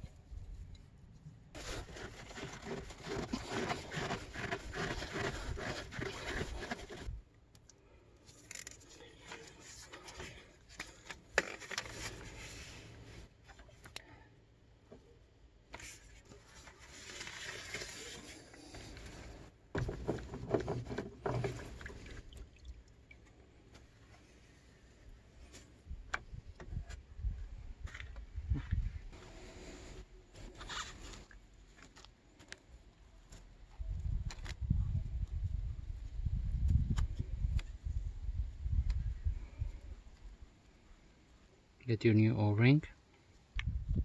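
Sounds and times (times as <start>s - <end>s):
scrapes and clicks of handling: 1.6s - 14.1s, 15.7s - 22.2s.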